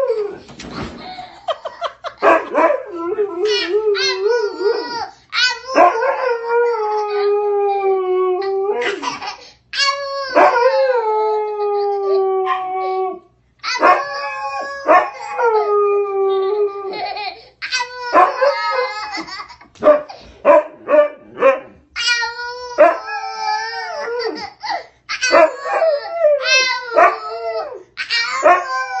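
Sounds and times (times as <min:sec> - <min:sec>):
dog howling: 0:10.3 - 0:17.0, 0:18.0 - 0:19.2, 0:20.8 - 0:24.5, 0:25.2 - 0:29.0.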